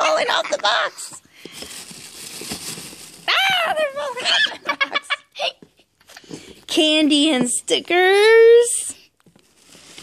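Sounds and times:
toys rustling: 0:00.0 - 0:04.4.

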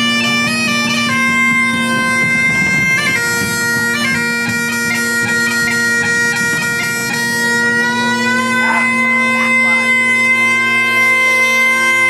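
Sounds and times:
bagpipes holding a note: 0:00.0 - 0:12.0.

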